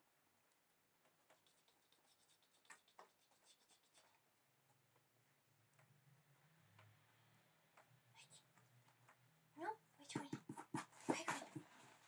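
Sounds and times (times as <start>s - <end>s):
faint scratching: 1.0s - 4.3s.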